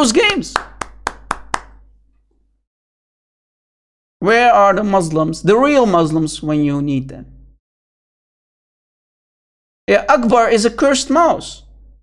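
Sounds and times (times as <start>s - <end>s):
sharp hand claps: 0.0s - 1.9s.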